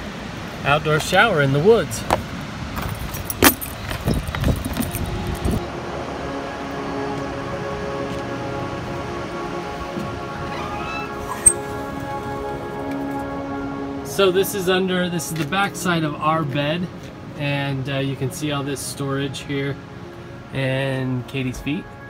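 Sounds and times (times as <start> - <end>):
handling clatter: 2.8 - 5.6
soft background music: 4.5 - 22.0.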